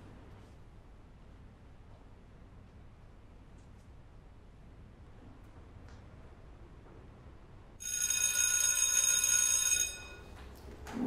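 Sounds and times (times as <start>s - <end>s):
electric school bell ringing: 7.8s - 10.4s.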